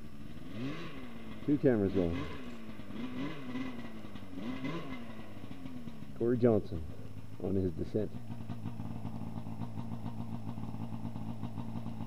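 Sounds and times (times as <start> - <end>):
snowmobile engine revving: 0.3 - 5.5.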